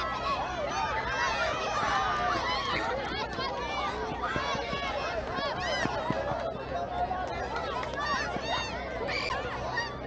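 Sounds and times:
children shouting and squealing: 0:00.0 - 0:10.0
crowd chatter: 0:00.0 - 0:10.0.

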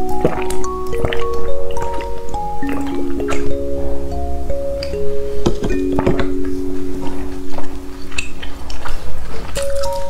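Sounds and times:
wet squishing and slurping: 0:00.0 - 0:02.9, 0:08.1 - 0:10.0
chime-like background music: 0:00.0 - 0:10.0.

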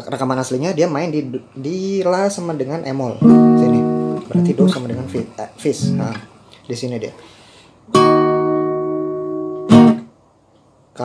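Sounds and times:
acoustic guitar chord strummed: 0:03.2 - 0:06.3, 0:07.9 - 0:10.1.

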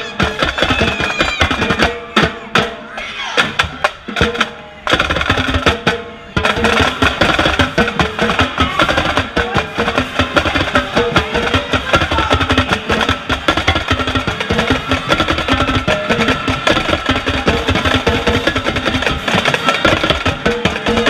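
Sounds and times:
drumline playing a cadence: 0:00.0 - 0:21.0
tenor drums struck rapidly: 0:00.0 - 0:21.0.

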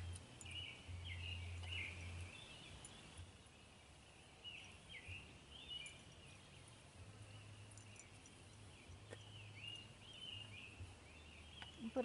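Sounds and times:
faint bird chirping: 0:00.0 - 0:12.0.

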